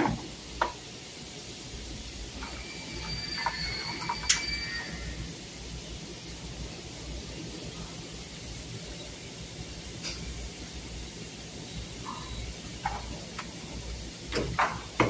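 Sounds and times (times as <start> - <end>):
room noise hiss and hum: 0.0 - 15.0
faint high-pitched tone: 2.4 - 5.4.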